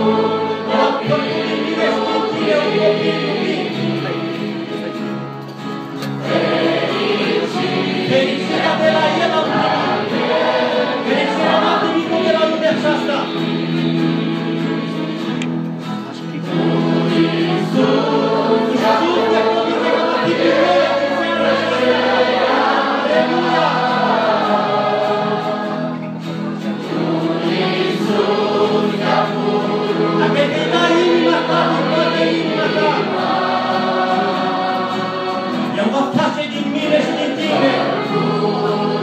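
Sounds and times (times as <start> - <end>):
choir singing a hymn: 0.0 - 39.0.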